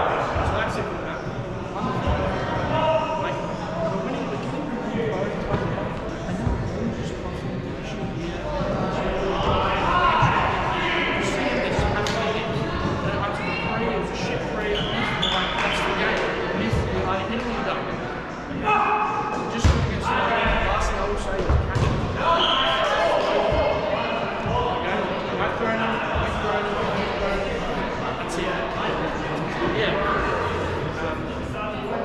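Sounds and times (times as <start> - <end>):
players chattering and calling: 0.0 - 32.0.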